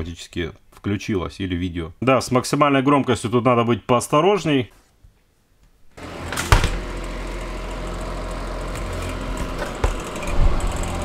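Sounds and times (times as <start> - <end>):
fan heater blowing and humming: 6.0 - 11.0.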